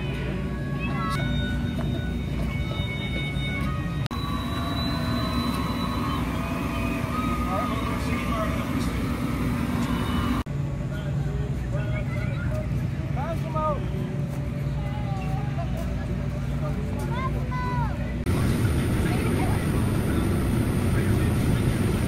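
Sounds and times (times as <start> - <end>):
music: 0.0 - 18.1
faint voices: 0.0 - 22.0.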